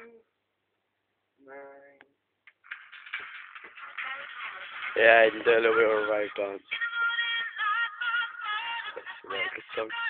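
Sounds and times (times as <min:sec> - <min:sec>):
distorted harsh music: 0:02.5 - 0:10.0.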